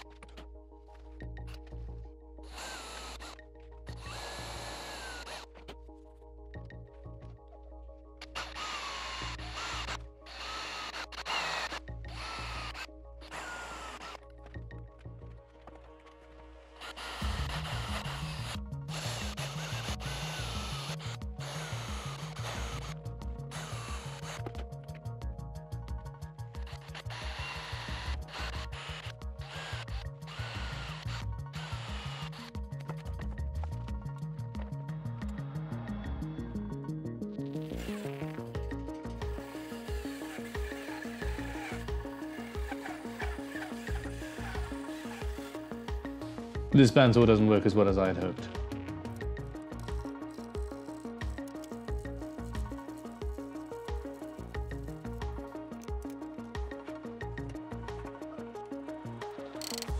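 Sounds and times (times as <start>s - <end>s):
background music with low beat: 0.0s - 59.9s
cordless drill whining: 2.4s - 5.7s, 8.2s - 14.4s, 16.6s - 24.6s, 26.6s - 33.0s, 37.6s - 46.6s, 59.5s - 59.9s.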